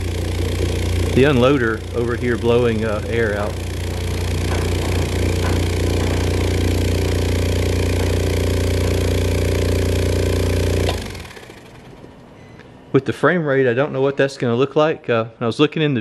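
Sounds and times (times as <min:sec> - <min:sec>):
refrigerator compressor humming: 0:00.0 - 0:13.0.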